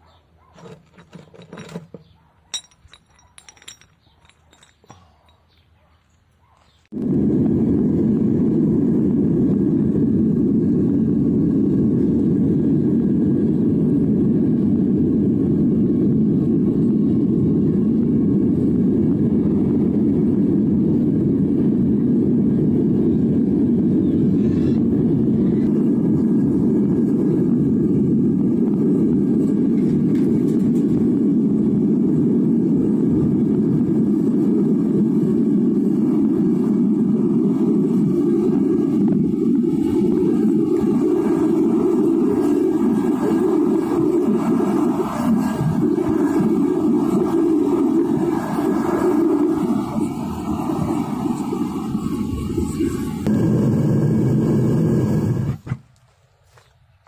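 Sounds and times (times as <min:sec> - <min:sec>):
furnace burner roar: 0:06.9 - 0:55.8.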